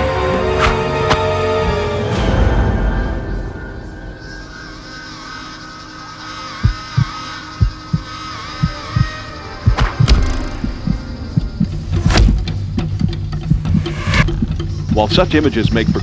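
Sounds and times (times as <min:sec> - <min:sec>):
low drone with high tone: 0:01.4 - 0:16.0
heartbeat-like thumps: 0:06.6 - 0:16.0.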